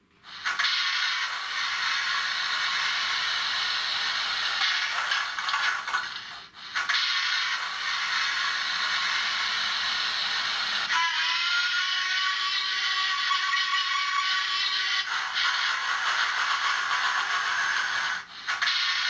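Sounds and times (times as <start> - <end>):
steam hiss from small speaker: 0.2 - 11.4
steam whistle: 10.9 - 15.1.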